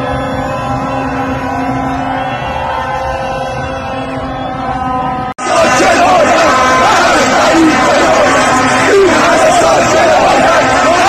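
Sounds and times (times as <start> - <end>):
horns blasting: 0.0 - 11.0
large street crowd noise: 0.0 - 11.0.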